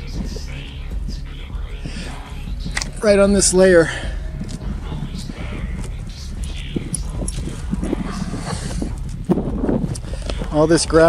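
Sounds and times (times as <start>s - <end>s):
footsteps on gravel: 0.0s - 11.0s
goat hooves crunching on gravel: 0.0s - 11.0s
low rumble: 0.0s - 11.0s.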